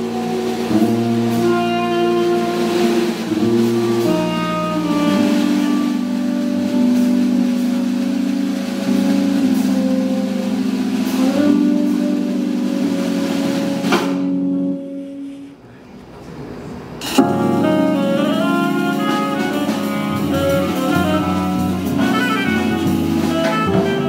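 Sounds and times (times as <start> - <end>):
jazz trio playing sustained tones: 0.0 - 15.7, 16.9 - 24.0.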